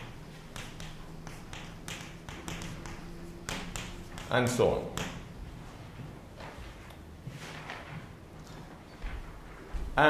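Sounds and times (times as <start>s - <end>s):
chalk tapping on a chalkboard: 0.0s - 5.4s.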